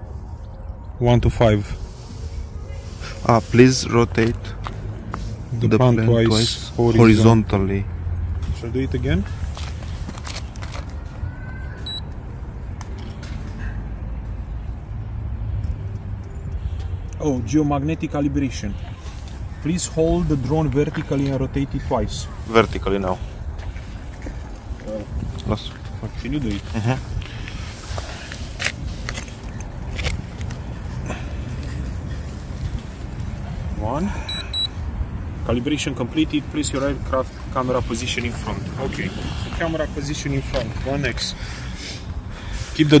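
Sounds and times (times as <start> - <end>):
high-pitched electronic beep: 11.8 - 12.1, 34.3 - 34.7.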